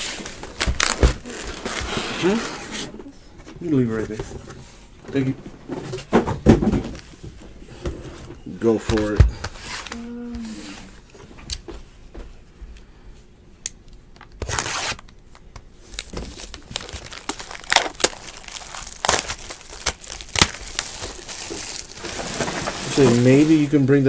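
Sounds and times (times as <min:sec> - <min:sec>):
plastic shrink wrap tearing: 0:00.0 - 0:02.6, 0:15.9 - 0:23.8.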